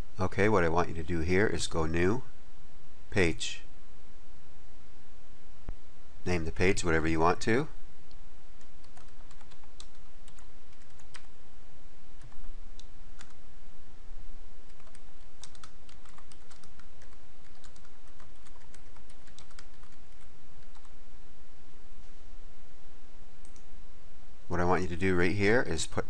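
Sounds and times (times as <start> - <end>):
background hiss: 0.0 - 26.0.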